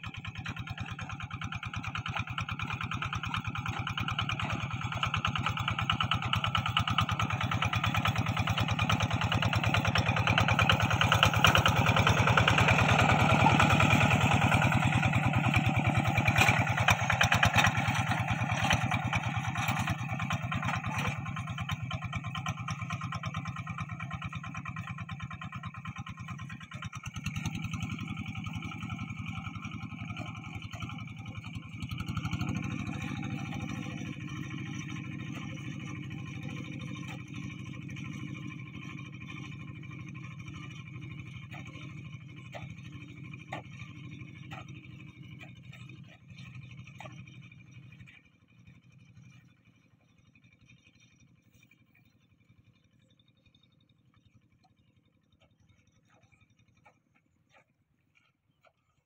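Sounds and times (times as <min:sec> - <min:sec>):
diesel engine chugging: 0:00.0 - 0:59.0.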